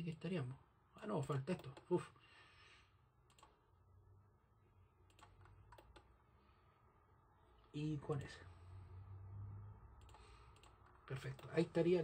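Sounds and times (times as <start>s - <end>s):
faint computer clicks: 10.0s - 11.6s.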